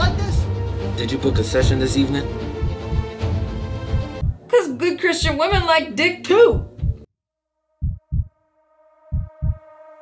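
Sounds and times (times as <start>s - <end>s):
deep heartbeat thumps: 2.4s - 4.5s, 5.2s - 7.1s, 7.8s - 8.3s, 9.1s - 9.6s.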